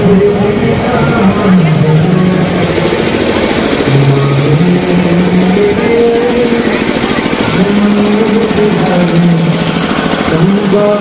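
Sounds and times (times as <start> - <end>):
fast drumming: 0.0 - 11.0
voices holding long notes: 0.0 - 11.0.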